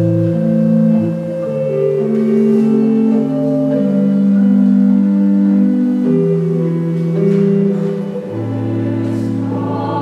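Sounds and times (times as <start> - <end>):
slow church chords: 0.0 - 10.0.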